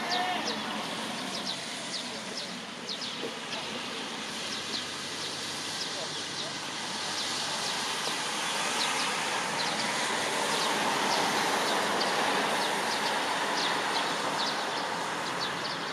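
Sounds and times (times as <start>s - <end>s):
steady outdoor hiss: 0.0s - 15.9s.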